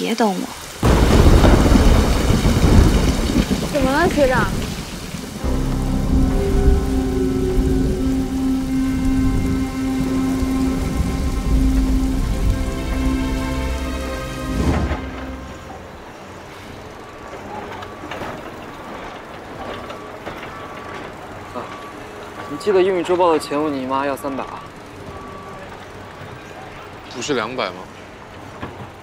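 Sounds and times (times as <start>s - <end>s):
outdoor background: 0.0s - 29.0s
rain: 0.0s - 29.0s
thunder: 0.8s - 21.9s
held music tones: 5.4s - 16.5s.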